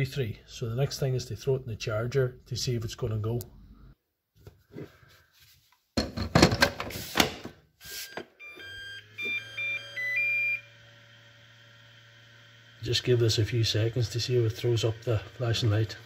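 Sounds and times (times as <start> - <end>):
electronic beeps: 8.0 - 10.6.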